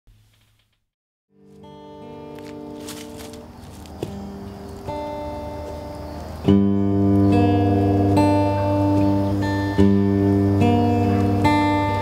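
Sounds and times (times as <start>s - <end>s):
acoustic guitar picked notes: 1.3s - 12.0s.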